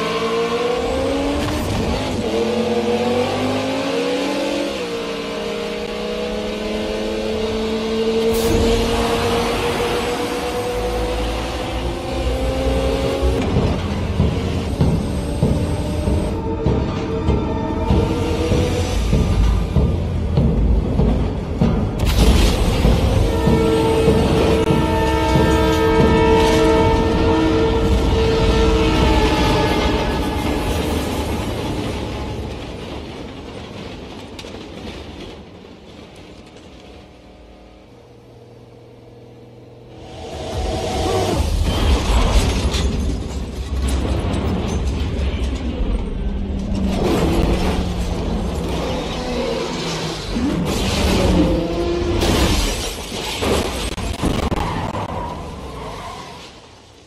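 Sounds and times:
racing car engines: 0:00.0 - 0:34.1, 0:35.9 - 0:57.0
train horn chord: 0:23.1 - 0:31.7.

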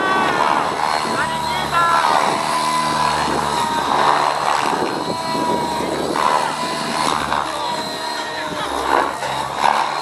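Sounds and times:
model helicopter whine: 0:00.0 - 0:10.0
rotor blades rushing: 0:00.0 - 0:10.0.

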